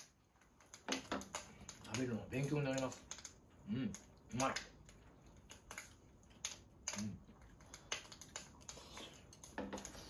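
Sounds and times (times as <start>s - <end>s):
chopsticks clicking against bowl: 0.4s - 10.0s.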